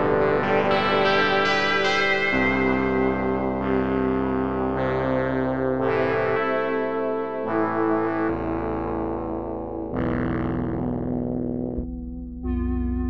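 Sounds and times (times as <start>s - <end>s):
synthesizer pad chords: 0.0s - 13.0s.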